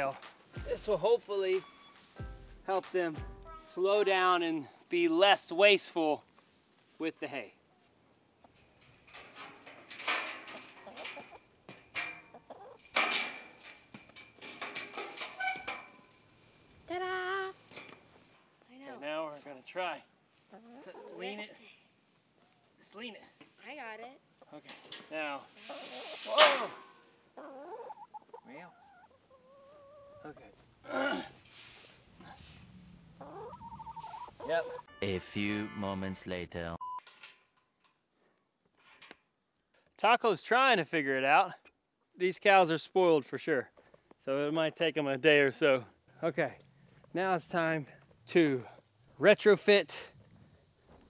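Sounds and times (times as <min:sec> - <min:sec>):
chickens clucking: 0:10.2 - 0:13.6, 0:20.5 - 0:21.6, 0:25.6 - 0:30.6, 0:33.0 - 0:35.0
hens calling: 0:12.1 - 0:12.9, 0:25.6 - 0:30.6, 0:33.0 - 0:36.2
chicken squawks: 0:25.6 - 0:30.4, 0:33.2 - 0:34.9
person speaking: 0:34.5 - 0:36.8.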